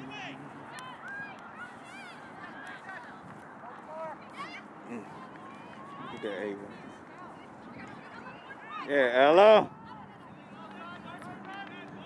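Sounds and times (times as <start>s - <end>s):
distant shouts from players: 0.0s - 12.0s
outdoor background noise: 0.0s - 12.0s.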